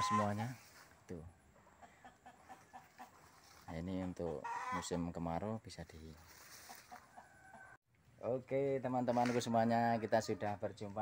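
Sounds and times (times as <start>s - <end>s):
chickens clucking: 0.0s - 5.4s, 6.0s - 7.8s.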